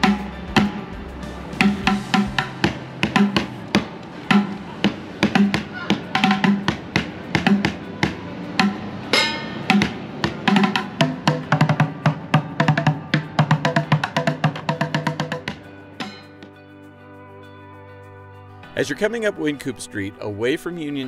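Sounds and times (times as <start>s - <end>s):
drumming on plastic buckets: 0.0s - 9.0s, 9.7s - 16.2s
ringing drum stroke: 0.0s - 16.4s.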